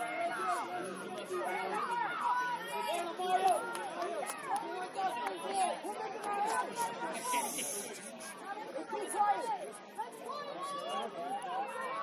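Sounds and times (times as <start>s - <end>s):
people chattering and calling out: 0.0s - 12.0s.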